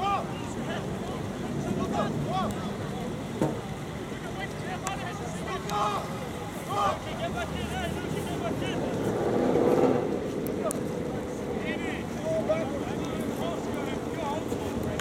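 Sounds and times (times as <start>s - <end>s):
distant shouts and calls: 0.0s - 8.9s.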